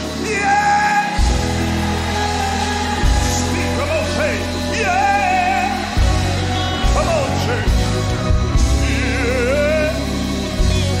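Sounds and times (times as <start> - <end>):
deep bass: 0.0 - 11.0
gospel church music: 0.0 - 11.0.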